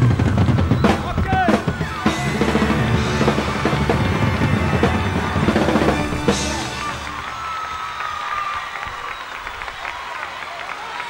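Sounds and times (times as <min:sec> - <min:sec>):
live rock band playing: 0:00.0 - 0:07.5
crowd applauding and cheering: 0:00.0 - 0:11.0.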